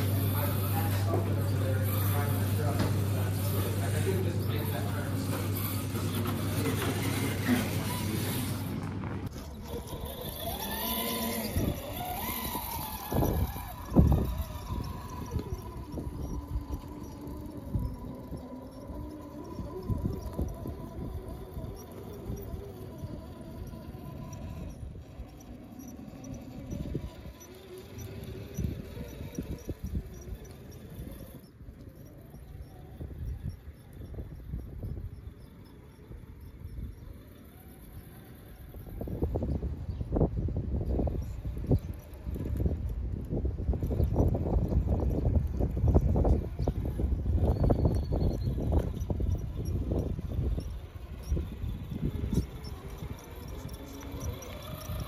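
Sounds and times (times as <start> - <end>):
steady hum of busy hall: 0.0 - 34.6
rc truck electric motor whining: 0.0 - 55.0.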